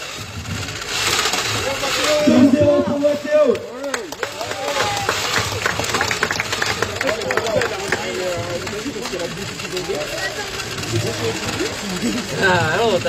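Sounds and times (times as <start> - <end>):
motorized toy rattling hum: 0.0 - 13.0.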